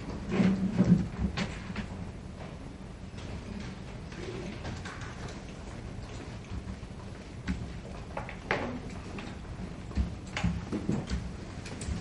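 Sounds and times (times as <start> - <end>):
steady low hum: 0.0 - 12.0
clicks and rustles: 3.2 - 6.8.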